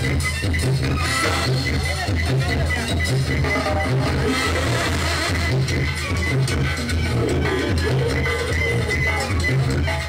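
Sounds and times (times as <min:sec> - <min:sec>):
brass band playing dance tune: 0:00.0 - 0:10.0
sousaphone bass line: 0:00.0 - 0:10.0.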